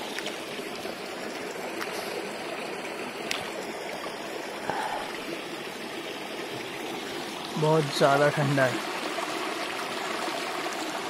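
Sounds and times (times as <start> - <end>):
stream running over stones: 0.0 - 11.0.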